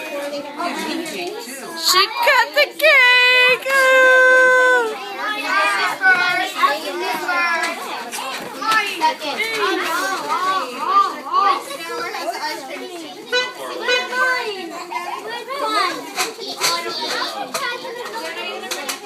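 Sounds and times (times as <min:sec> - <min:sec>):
young children talking and calling out: 0:00.0 - 0:19.0.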